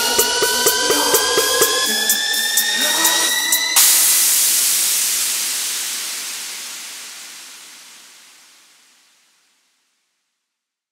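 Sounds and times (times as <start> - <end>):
rising synth tones: 0.0 - 4.1
white-noise hiss burst: 3.8 - 9.6.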